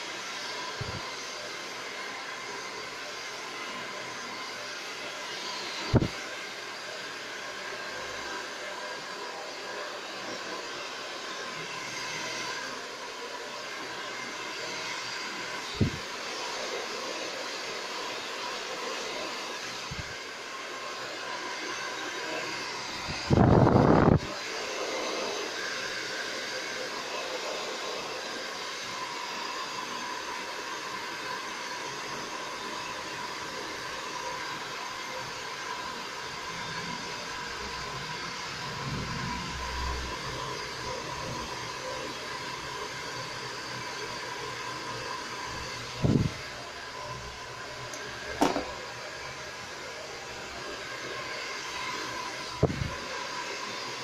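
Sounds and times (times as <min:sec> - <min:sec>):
hair dryer blowing: 0:00.0 - 0:54.0.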